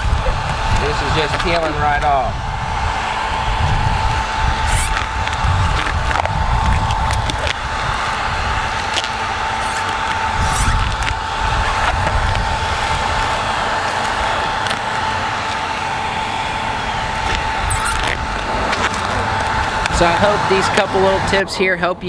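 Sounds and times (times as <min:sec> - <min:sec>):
blow dryer running: 0:00.0 - 0:22.0
clicks of vinyl wrap peeling: 0:04.7 - 0:11.2, 0:13.9 - 0:15.6.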